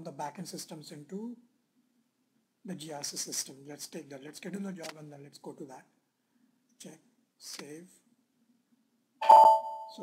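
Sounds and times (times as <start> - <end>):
computer notification chime: 9.2 - 10.0.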